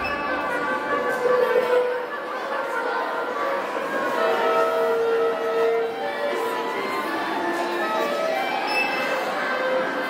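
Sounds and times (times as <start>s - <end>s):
wind band playing long held notes: 0.0s - 10.0s.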